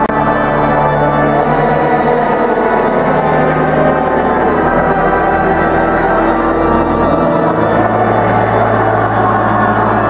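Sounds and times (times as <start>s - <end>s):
church organ chords: 0.0s - 10.0s.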